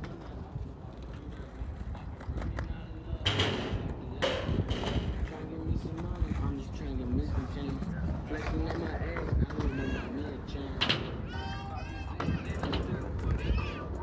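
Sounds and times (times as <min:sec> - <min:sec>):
people talking and calling out: 0:00.0 - 0:14.0.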